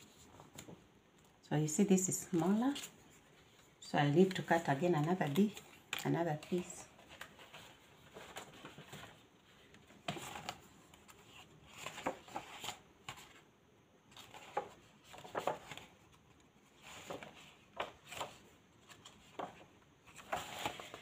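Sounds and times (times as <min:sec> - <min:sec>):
magazine pages rustling: 0:02.3 - 0:13.5, 0:14.1 - 0:21.0.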